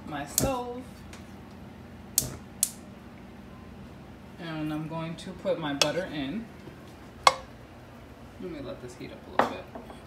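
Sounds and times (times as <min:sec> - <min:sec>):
stove switch clicks: 0:00.4 - 0:00.6, 0:02.2 - 0:02.8.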